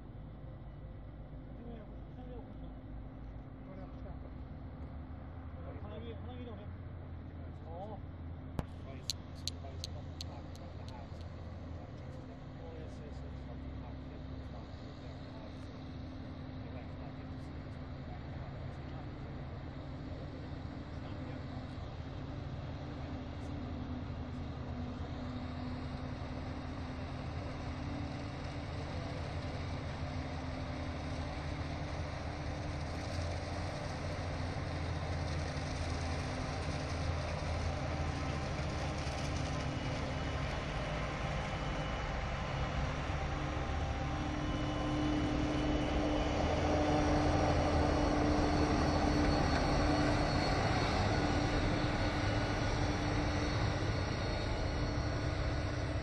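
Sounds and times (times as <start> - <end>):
tractor engine: 28.7 - 56.0.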